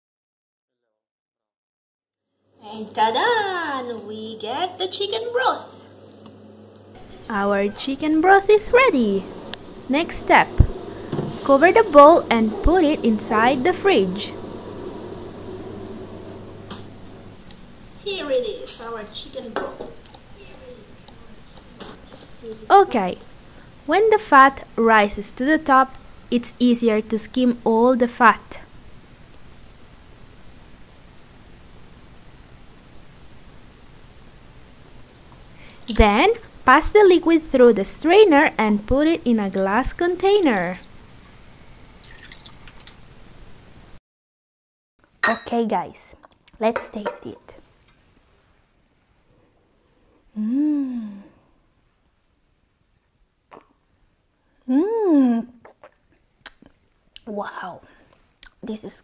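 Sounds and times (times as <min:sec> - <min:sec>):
display refrigerator humming: 0:02.6 - 0:44.0
broth dripping through strainer: 0:40.7 - 0:43.0.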